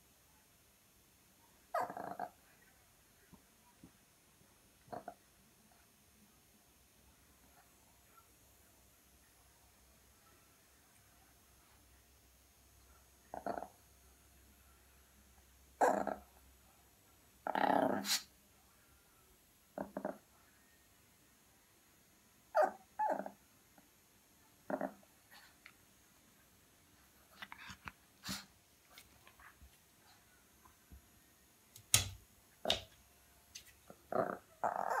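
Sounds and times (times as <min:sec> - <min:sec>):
small dog growling bark: 0:01.7 - 0:02.4, 0:04.9 - 0:05.2, 0:13.3 - 0:13.8, 0:15.8 - 0:16.4, 0:17.4 - 0:18.3, 0:19.8 - 0:20.3, 0:22.5 - 0:23.4, 0:24.6 - 0:25.5, 0:33.9 - 0:35.0.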